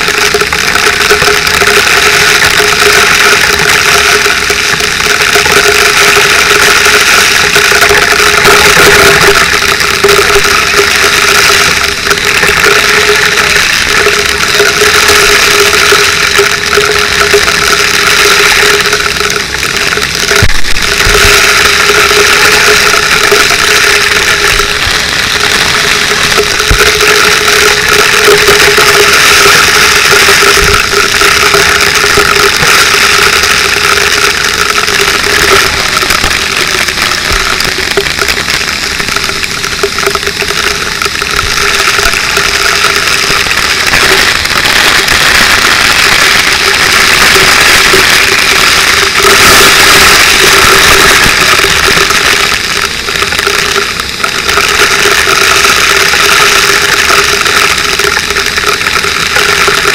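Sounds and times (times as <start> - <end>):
high-pressure water spray hissing: 0.0 - 59.9
steady hum: 0.0 - 59.9.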